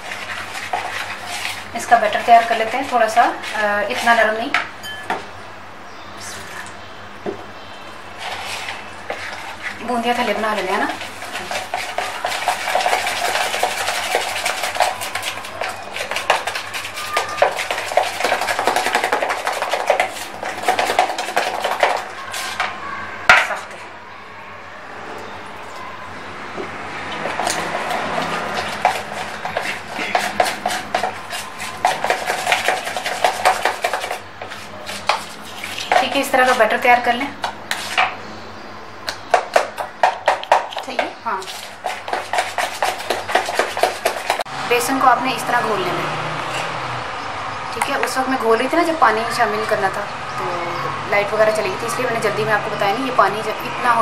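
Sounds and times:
spoon scraping batter in plastic bowl: 0.0 - 4.7, 8.2 - 23.9, 27.0 - 38.2, 39.1 - 44.5, 47.8 - 50.0.

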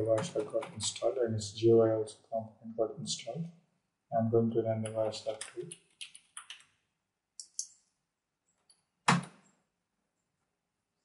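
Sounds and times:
computer keyboard keys clicking: 4.9 - 6.7.

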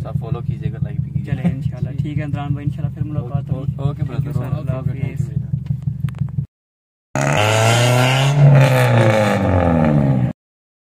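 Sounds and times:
car engine driving away: 7.2 - 10.4.

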